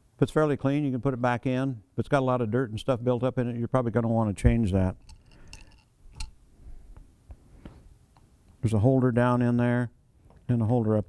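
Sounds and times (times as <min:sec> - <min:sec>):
metal filter bowl rustling: 0:05.0 - 0:06.4
small metal clicks: 0:05.0 - 0:06.4.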